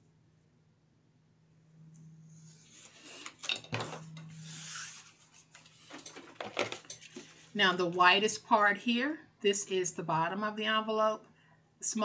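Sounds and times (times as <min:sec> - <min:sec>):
paper sliding and rustling: 0:02.4 - 0:07.6.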